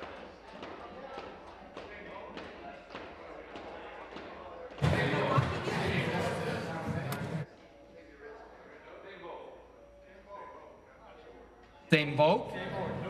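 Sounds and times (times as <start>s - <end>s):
low indistinct chatter: 0.0s - 13.0s
loud voices: 4.1s - 7.5s.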